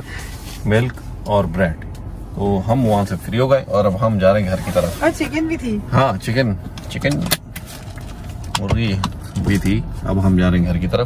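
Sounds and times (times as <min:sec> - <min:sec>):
speech inside a car: 0:00.3 - 0:07.4, 0:08.4 - 0:11.0.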